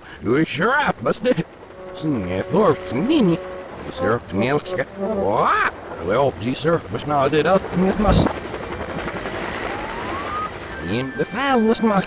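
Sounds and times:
steady rushing noise: 0.2 - 12.0
reversed soundtrack burst: 1.3 - 8.0
thin tone gliding upward: 1.7 - 6.0
reversed speech: 2.0 - 6.6.

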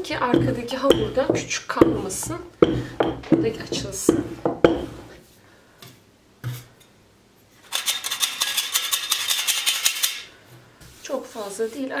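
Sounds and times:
rolling pin knocking on board: 0.0 - 5.1.

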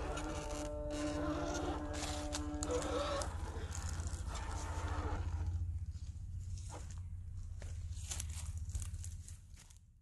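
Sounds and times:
electric motor whine: 0.0 - 5.6.

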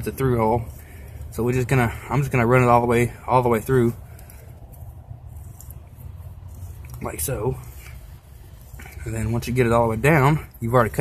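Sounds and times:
faint clicks and rustles: 0.0 - 11.0
steady low rumble: 0.0 - 11.0.

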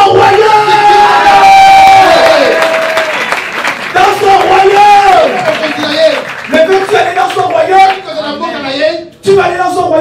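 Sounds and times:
man shouting through loudspeakers: 0.0 - 2.6, 4.0 - 10.0.

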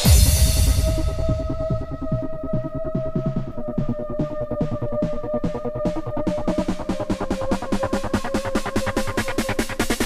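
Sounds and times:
hissy hit: 0.0 - 2.0
bouncy electronic dance music: 0.0 - 10.0.

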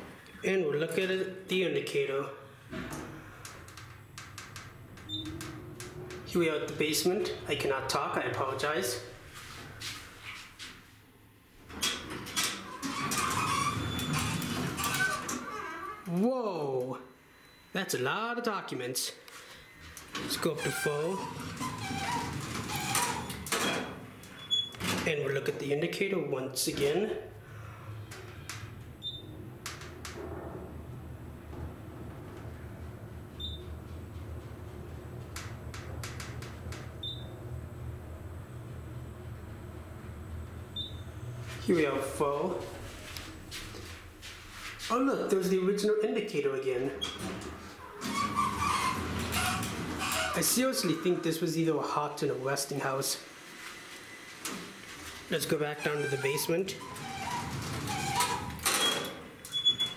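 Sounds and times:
elevator doors sliding open: 2.6 - 10.0, 11.6 - 16.0, 19.8 - 25.4, 26.6 - 45.0, 46.7 - 59.9.

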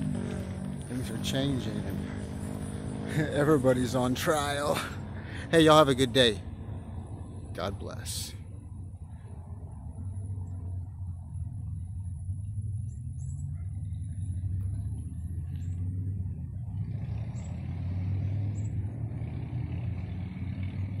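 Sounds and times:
steady low rumble: 0.0 - 16.8.

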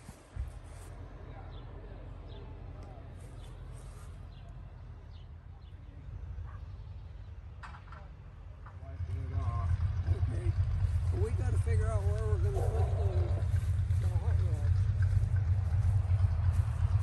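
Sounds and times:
people talking nearby: 0.8 - 7.0, 7.8 - 16.6
steady low rumble: 8.3 - 17.0.

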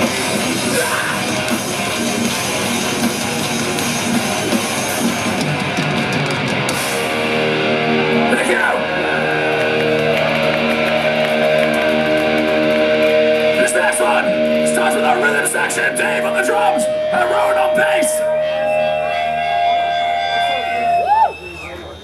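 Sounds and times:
metal band playing live: 0.0 - 21.3
distorted guitar chord ringing: 0.0 - 21.4
crowd shouting: 0.0 - 22.0.

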